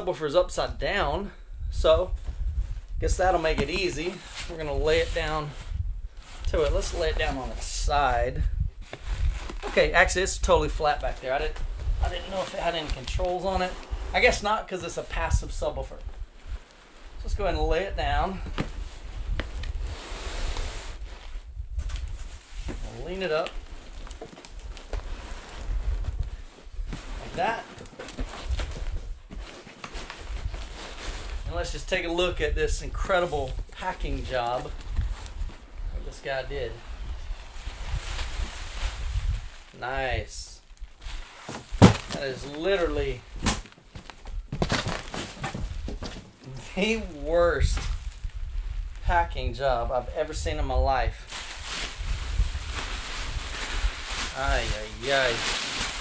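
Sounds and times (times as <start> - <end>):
cardboard rustling and scraping: 2.1 - 40.4, 41.0 - 48.4, 51.3 - 56.0
box knocks and clicks: 41.5 - 42.2
cardboard box scraping: 44.5 - 46.3.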